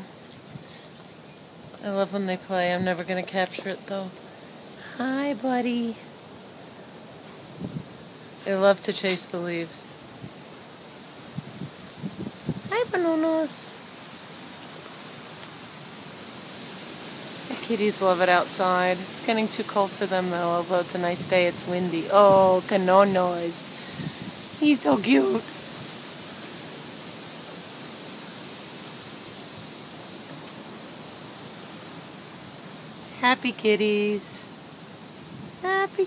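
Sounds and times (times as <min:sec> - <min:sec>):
steady outdoor wind: 0:00.0 - 0:36.0.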